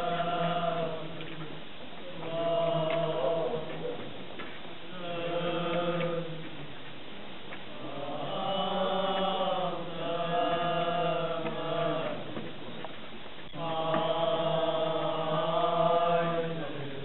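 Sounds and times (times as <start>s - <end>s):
voices chanting a slow hymn: 0.0s - 17.0s.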